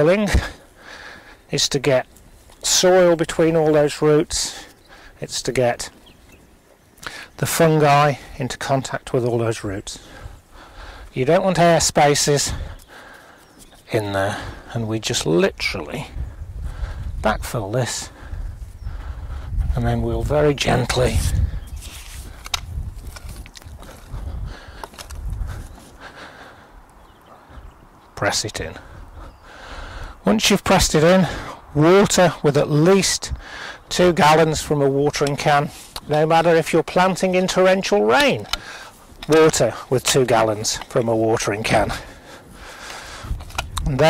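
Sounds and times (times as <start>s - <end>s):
boots treading on soil: 20.4s - 26.1s
garden fork scraping soil: 21.7s - 23.5s.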